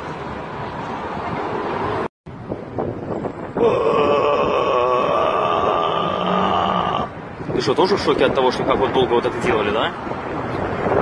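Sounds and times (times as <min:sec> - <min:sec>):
man wailing moan: 0:03.6 - 0:07.2.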